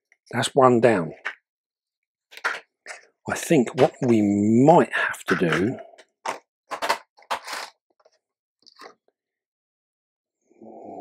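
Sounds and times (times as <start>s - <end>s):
rustling scraping handling noises: 5.3s - 9.0s.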